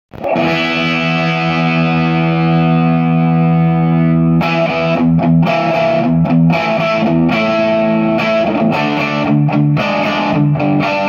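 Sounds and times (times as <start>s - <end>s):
distorted electric guitar chord: 0.2s - 11.0s.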